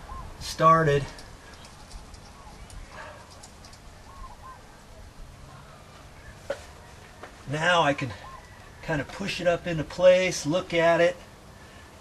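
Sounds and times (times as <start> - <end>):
bird calling faintly: 0.0 - 0.4, 1.0 - 7.4, 8.0 - 8.8
faint small ticks: 1.1 - 3.9.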